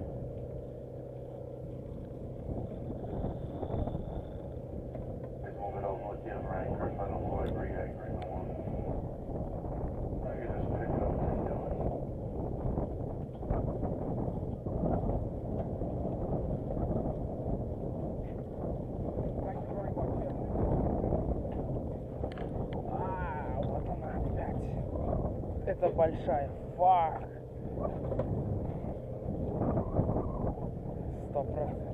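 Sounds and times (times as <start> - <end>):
water noise: 0.0 - 31.9
wind buffeting microphone: 0.0 - 31.9
faint voices: 5.4 - 9.1, 10.0 - 12.0.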